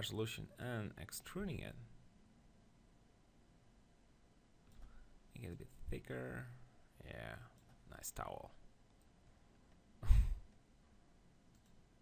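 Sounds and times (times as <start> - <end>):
breath puff on microphone: 10.0 - 10.4
faint mouse click: 11.5 - 11.8.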